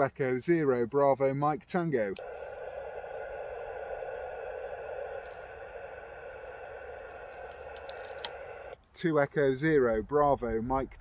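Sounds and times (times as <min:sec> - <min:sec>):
faint steady tones: 0:02.1 - 0:08.8
radio receiver hiss: 0:02.1 - 0:08.8.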